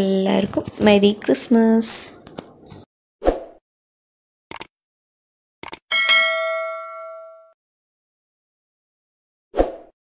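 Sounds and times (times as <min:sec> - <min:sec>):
notification bell ding: 0:05.9 - 0:07.6.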